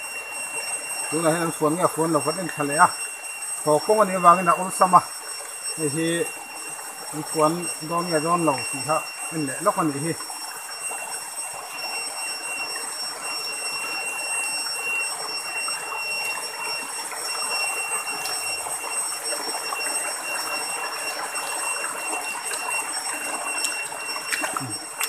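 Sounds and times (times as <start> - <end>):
high-pitched whine: 0.0 - 25.0
stream splashing over stones: 0.1 - 25.0.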